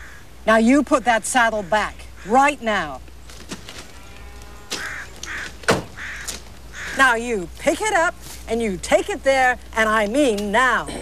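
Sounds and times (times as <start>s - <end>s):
bird calling: 0.0s - 0.4s, 1.4s - 2.6s, 3.2s - 7.4s.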